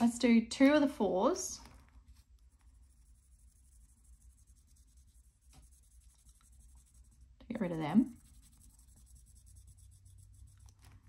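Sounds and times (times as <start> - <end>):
marker scribbling on paper: 2.1 - 11.0.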